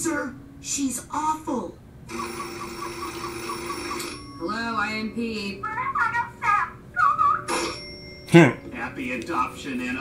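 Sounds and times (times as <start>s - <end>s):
telephone ringing electronic warble: 2.1s - 4.6s, 7.5s - 8.0s.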